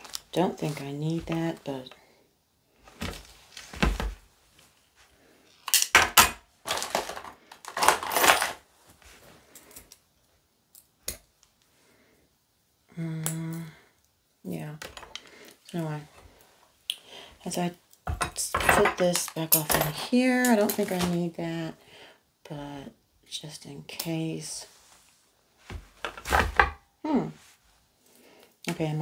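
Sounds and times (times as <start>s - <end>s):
cloth rustling: 2.7s - 5.4s
person murmuring: 12.9s - 13.8s
person humming: 12.9s - 13.9s.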